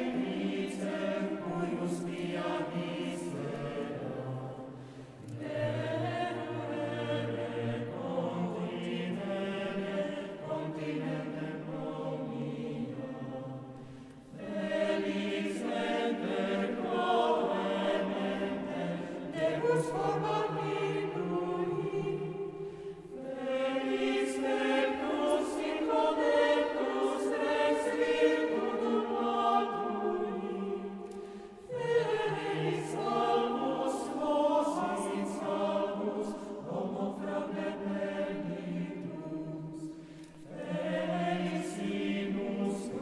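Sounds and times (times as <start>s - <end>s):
mixed choir singing a cappella: 0.0s - 43.0s.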